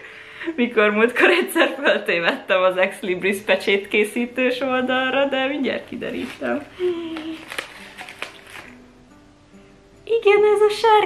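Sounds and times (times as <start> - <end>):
faint background music: 0.0 - 11.0
person humming: 6.6 - 7.6.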